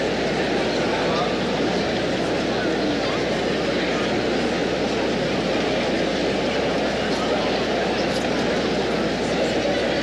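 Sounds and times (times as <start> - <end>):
crowd noise in ice arena: 0.0 - 10.0.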